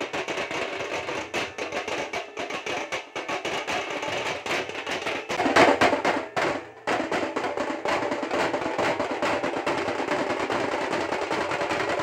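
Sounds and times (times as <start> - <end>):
barrel drums beaten fast: 0.0 - 12.0.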